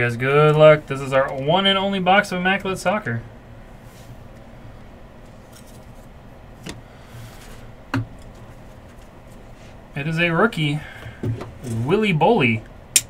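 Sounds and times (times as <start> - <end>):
low room hum: 0.0 - 13.0
card pack rustling: 5.3 - 6.1.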